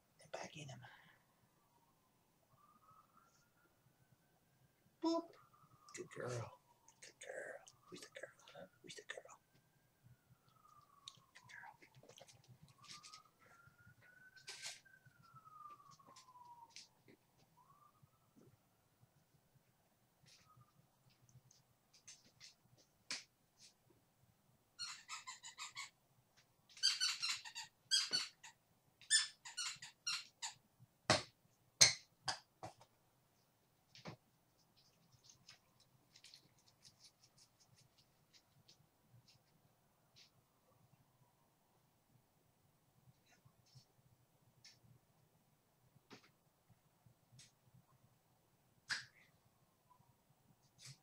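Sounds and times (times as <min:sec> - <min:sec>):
soft clicks and rustles: 0:10.4 - 0:17.6, 0:20.2 - 0:24.0, 0:32.7 - 0:40.4
squeaky dog toy squeaks: 0:24.8 - 0:25.9, 0:26.7 - 0:30.6.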